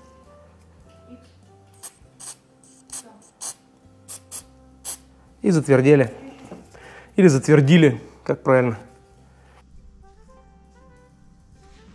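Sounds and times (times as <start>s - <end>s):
quiet background music: 0.0s - 11.9s
aerosol spray hissing: 1.8s - 5.2s.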